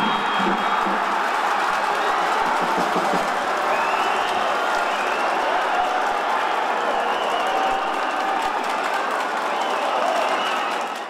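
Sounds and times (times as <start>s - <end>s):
stadium crowd applauding and cheering: 0.0s - 11.0s.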